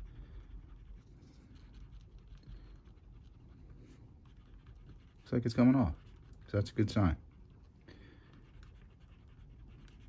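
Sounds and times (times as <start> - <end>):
eraser pen scratching paper: 0.0 - 10.0.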